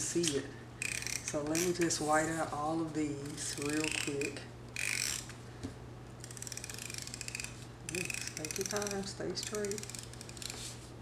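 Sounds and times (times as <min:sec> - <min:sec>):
correction tape scratching paper: 0:03.2 - 0:05.3, 0:06.2 - 0:10.8.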